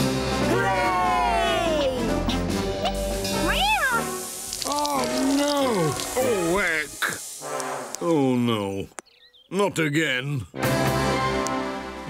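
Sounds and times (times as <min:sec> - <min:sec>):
background music: 0:00.0 - 0:08.9, 0:10.6 - 0:12.0
cartoon cat meowing: 0:02.8 - 0:04.1.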